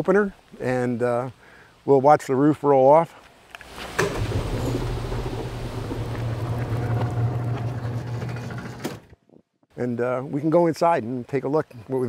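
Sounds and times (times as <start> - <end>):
garage door opener motor whirring: 4.0 - 9.1.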